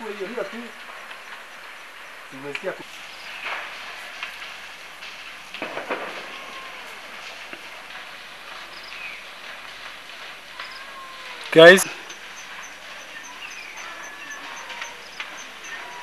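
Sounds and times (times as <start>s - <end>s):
faint outdoor background noise: 0.0s - 16.0s.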